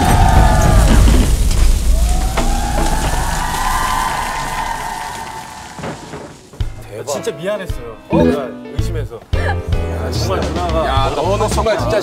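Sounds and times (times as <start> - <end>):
explosion rumble: 0.0 - 6.4
crackling flames and debris: 0.0 - 7.3
high soundtrack tone: 8.1 - 8.9.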